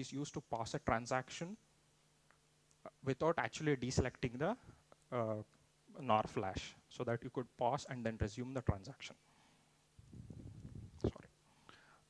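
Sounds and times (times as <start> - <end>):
low muffled rumbling: 10.0 - 11.2.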